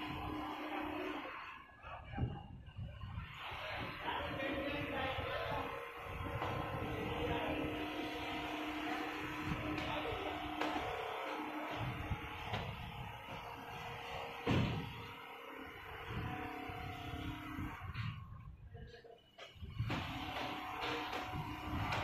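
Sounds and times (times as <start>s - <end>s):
quilting machine stitching: 3.2s - 18.0s, 19.8s - 22.0s.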